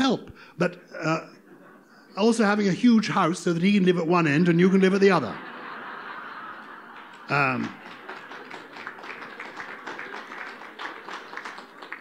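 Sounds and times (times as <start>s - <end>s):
audience clapping lightly: 6.5s - 12.0s.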